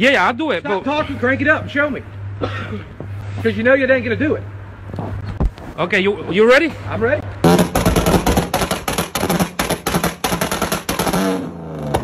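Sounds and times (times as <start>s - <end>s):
car engine revving: 7.4s - 12.0s
car exhaust popping and banging: 7.4s - 12.0s.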